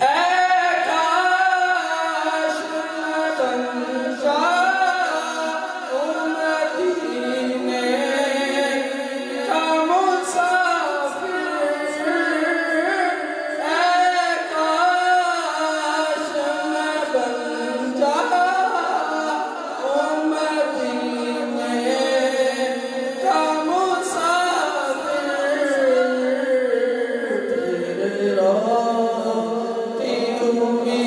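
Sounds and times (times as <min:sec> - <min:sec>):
boy singing into a microphone: 0:00.0 - 0:31.0.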